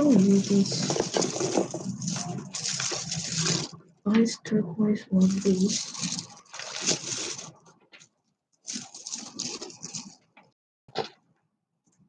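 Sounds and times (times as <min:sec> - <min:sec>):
stone beads rattling: 0:05.4 - 0:07.4.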